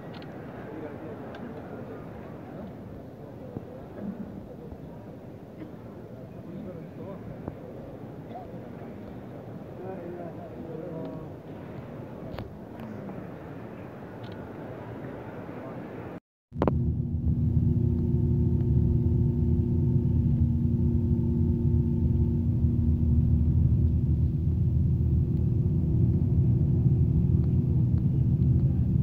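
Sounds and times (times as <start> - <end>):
crowd murmur: 0.0 - 16.2
engine hum: 16.6 - 29.0
vehicle road rumble: 16.6 - 29.0.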